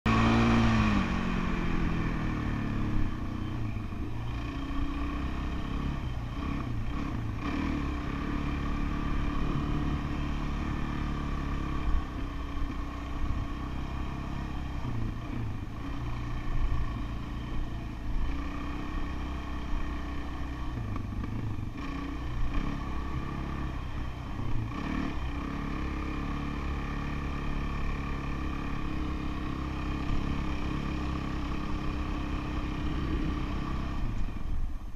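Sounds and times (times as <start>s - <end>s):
dirt bike engine revving: 0.1s - 34.2s.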